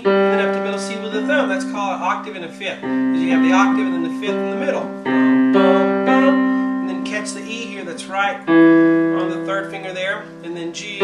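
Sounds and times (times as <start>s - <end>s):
piano note ringing: 0.0s - 11.0s.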